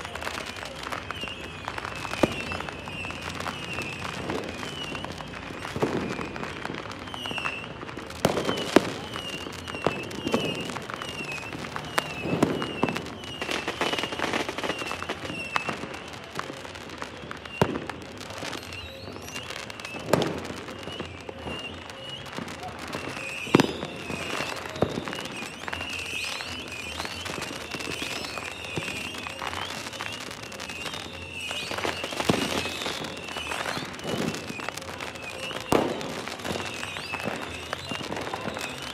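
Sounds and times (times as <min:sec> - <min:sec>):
distant fireworks popping and crackling: 0:00.0 - 0:38.9
loud firework bangs: 0:00.0 - 0:38.9
high falling whistle tones: 0:08.4 - 0:16.0, 0:18.4 - 0:38.9.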